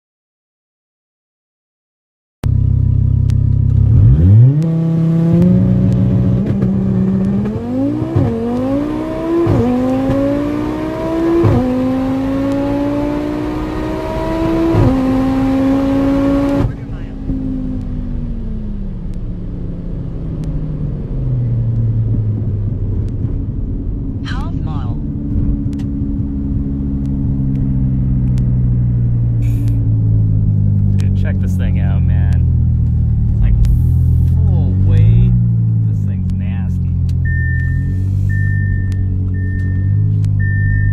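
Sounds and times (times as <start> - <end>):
car engine accelerating with upshifts: 2.4 - 40.9.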